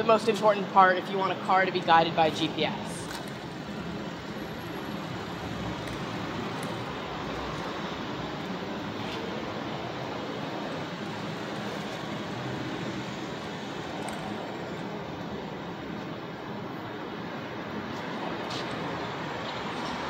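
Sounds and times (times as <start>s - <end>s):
low rumble of traffic: 0.0s - 20.0s.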